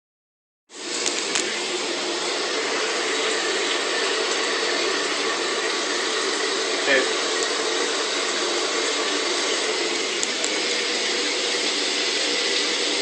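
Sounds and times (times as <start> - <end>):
shower water spraying: 0.7 - 13.0.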